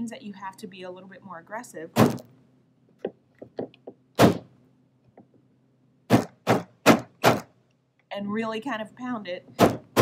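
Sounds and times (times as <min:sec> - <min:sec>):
hand pounding wooden bat: 0:03.0 - 0:04.5, 0:06.1 - 0:07.5, 0:09.6 - 0:10.0.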